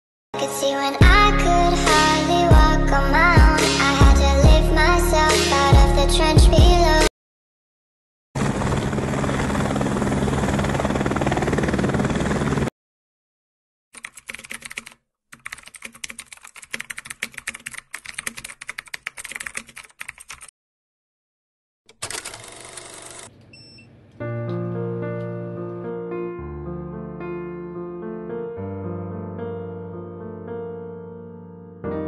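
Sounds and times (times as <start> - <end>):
helicopter rotor chopping: 8.4 - 12.7
faint short beep: 23.5 - 23.9.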